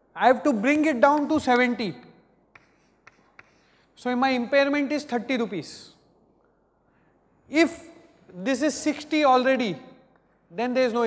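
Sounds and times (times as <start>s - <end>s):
chalk tapping on chalkboard: 2.5s - 3.7s.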